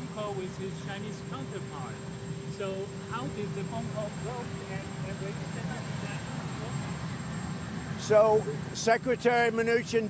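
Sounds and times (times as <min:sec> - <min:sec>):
engine running: 0:00.0 - 0:10.0.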